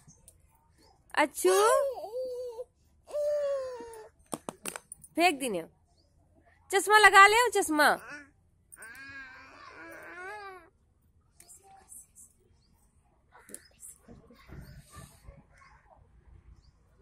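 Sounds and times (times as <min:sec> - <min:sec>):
baby vocalizing: 0:08.0 - 0:08.3.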